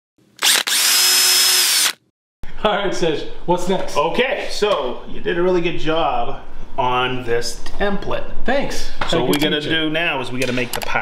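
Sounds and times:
power tool motor whine: 0:00.4 - 0:02.0.

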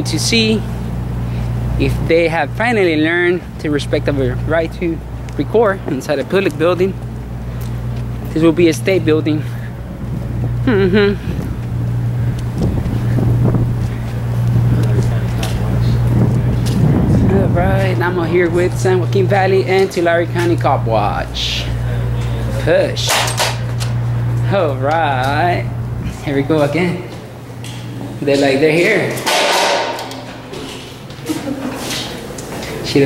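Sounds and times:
steady low hum: 0:00.0 - 0:33.0
wind noise on microphone: 0:09.6 - 0:18.9.

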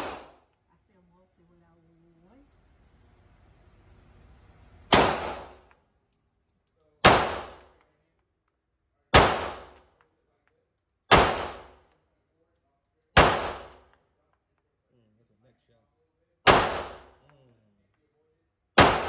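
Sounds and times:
pistol shots echoing indoors: 0:00.0 - 0:00.6, 0:04.8 - 0:08.5, 0:09.1 - 0:12.2, 0:12.8 - 0:14.6, 0:16.4 - 0:17.3, 0:18.5 - 0:19.0.

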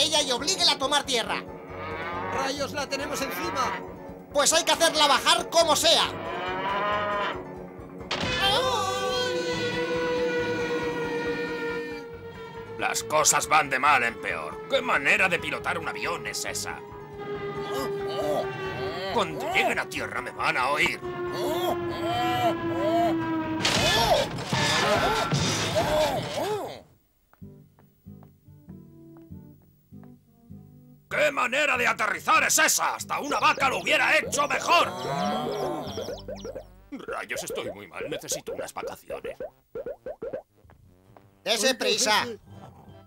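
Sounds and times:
cartoon cow mooing: 0:01.7 - 0:03.9, 0:06.0 - 0:07.6, 0:17.6 - 0:20.2, 0:21.1 - 0:25.4, 0:33.5 - 0:39.0
cartoon music with swooping notes: 0:33.1 - 0:40.6.

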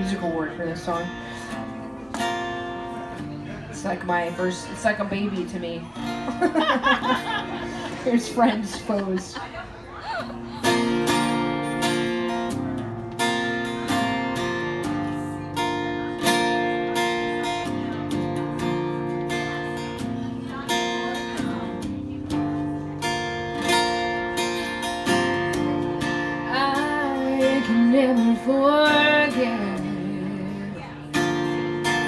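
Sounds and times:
acoustic guitar strumming chords: 0:00.0 - 0:09.3, 0:10.3 - 0:32.0.

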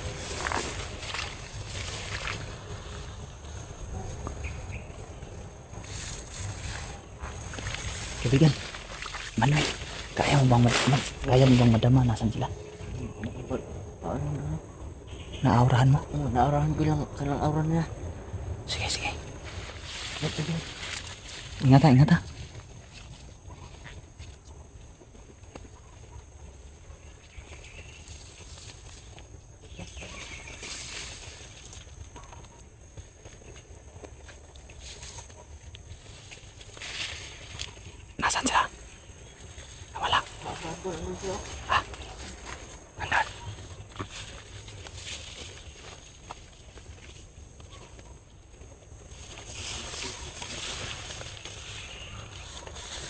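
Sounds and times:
rustling through leafy undergrowth: 0:00.0 - 0:14.0, 0:18.6 - 0:53.0.

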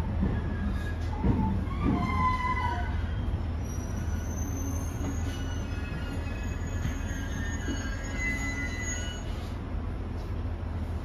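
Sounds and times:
railcar low rumble: 0:00.0 - 0:11.0
high-pitched squealing from running gear: 0:01.8 - 0:09.4.

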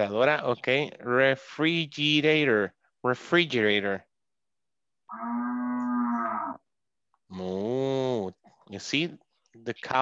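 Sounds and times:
cow mooing: 0:05.1 - 0:06.6.

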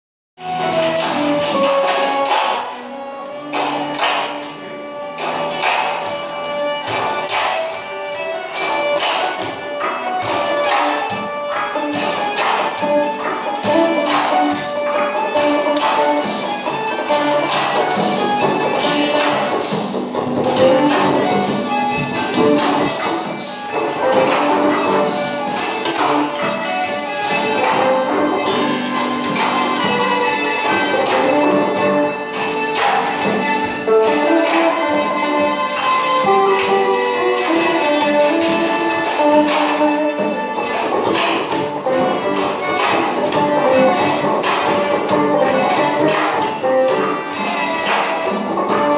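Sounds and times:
plucked string strumming: 0:00.4 - 0:48.9
electric guitar: 0:06.7 - 0:48.9.

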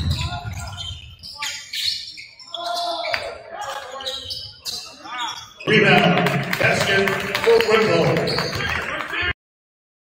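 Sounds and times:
crowd voices in a hall: 0:00.0 - 0:09.4.

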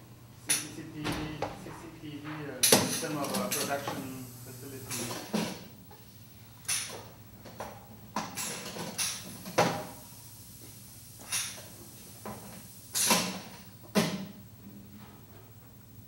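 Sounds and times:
pneumatic striker knocking ceramic: 0:04.9 - 0:05.6, 0:06.6 - 0:07.1, 0:08.2 - 0:10.0, 0:11.2 - 0:14.3.

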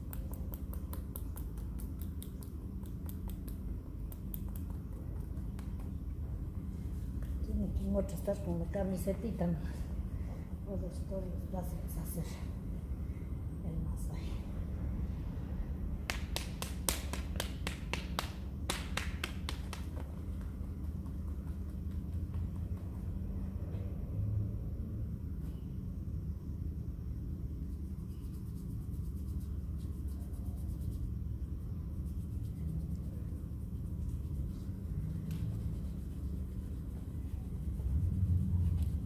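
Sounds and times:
steady low rumble: 0:00.0 - 0:39.0.

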